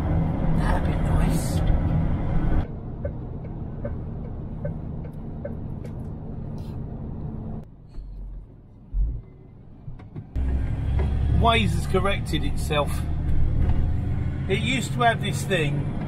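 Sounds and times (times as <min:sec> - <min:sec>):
lorry engine and road drone: 0:00.0 - 0:16.0
short low thumps: 0:07.8 - 0:09.4.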